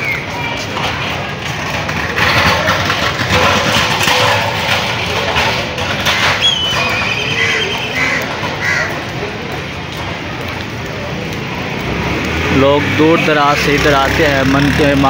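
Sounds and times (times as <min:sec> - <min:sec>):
street noise: 0:00.0 - 0:15.0
voices of passers-by: 0:00.0 - 0:15.0.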